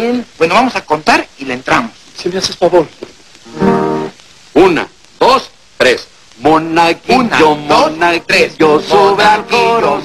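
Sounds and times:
acoustic guitar chord strummed: 3.5s - 4.2s, 7.5s - 10.0s.

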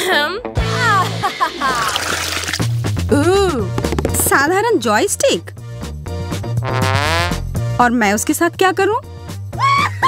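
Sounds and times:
background music with bass line: 2.6s - 8.2s.

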